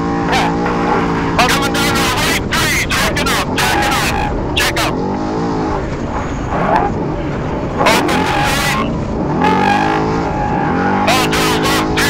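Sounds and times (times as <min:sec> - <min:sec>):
road and wind noise: 0:00.0 - 0:12.0
truck engine running hard: 0:00.0 - 0:12.0.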